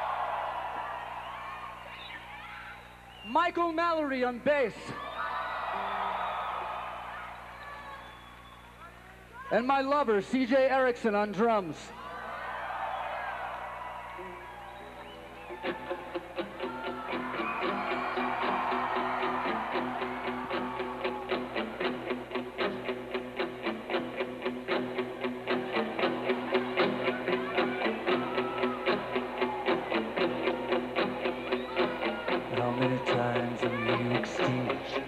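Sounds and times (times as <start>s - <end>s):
drums: 14.4s - 35.0s
electric guitar: 15.5s - 35.0s
bass guitar: 15.6s - 35.0s.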